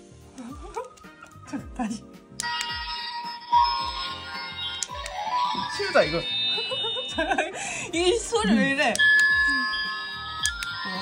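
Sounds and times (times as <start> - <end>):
background music with steady beat: 0.0 - 11.0
shimmering electronic toy chime: 2.4 - 11.0.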